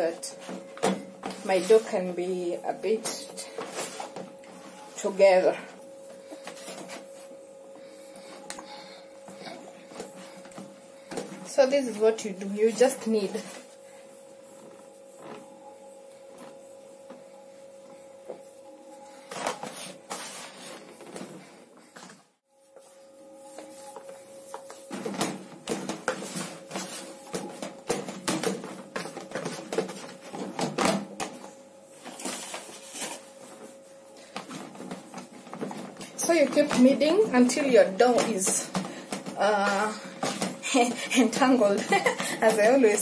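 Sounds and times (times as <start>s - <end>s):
steady hum: 0.0s - 43.0s
hands kneading sticky dough: 1.3s - 22.0s, 22.6s - 30.4s.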